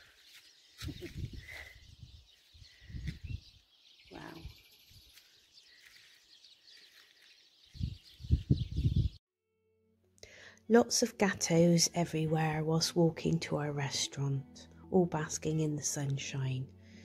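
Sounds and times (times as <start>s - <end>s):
faint bird chirps: 0.0s - 9.2s
wind gusts on microphone: 0.8s - 4.6s, 7.7s - 9.2s.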